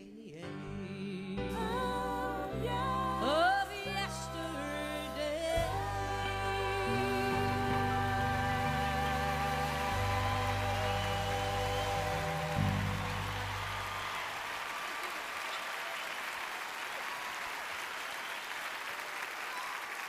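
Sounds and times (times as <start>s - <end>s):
audience applause: 5.6s - 20.0s.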